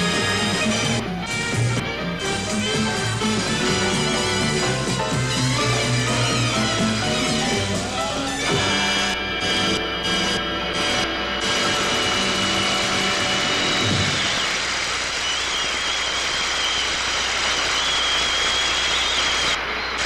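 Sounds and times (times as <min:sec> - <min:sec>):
jazz band chord: 0:00.0 - 0:14.0
audience applauding: 0:00.0 - 0:20.0
high wavering whistle: 0:13.9 - 0:20.0.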